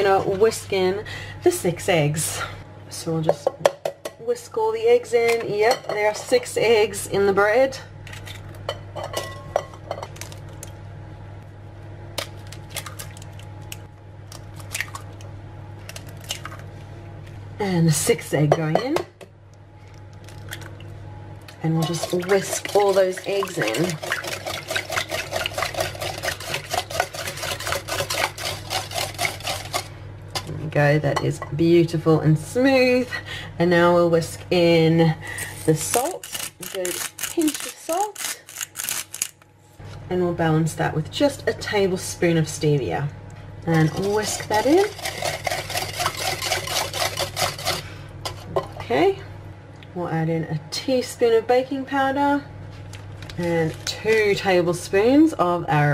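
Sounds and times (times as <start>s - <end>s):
oven humming: 0.0s - 55.9s
raw eggs squelching in bowl: 21.5s - 29.9s.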